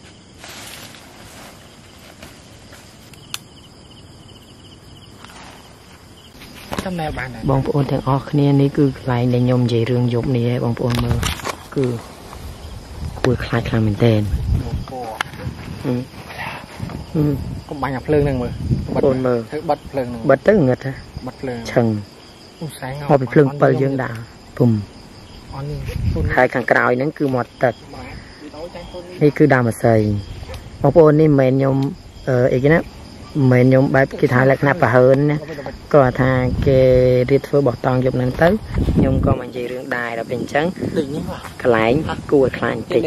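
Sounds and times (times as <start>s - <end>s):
background hiss: 0.0s - 43.0s
cricket trilling: 0.0s - 43.0s.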